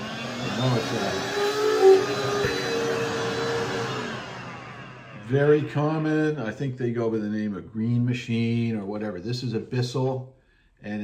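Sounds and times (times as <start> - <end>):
carpet cleaner motor whining: 0.0 - 6.0.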